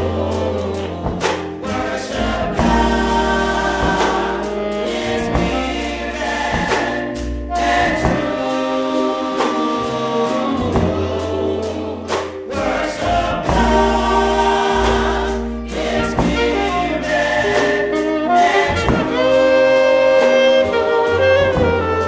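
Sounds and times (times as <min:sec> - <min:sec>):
women singing in close harmony: 0:00.0 - 0:19.3
electric keyboard with deep bass: 0:00.0 - 0:22.0.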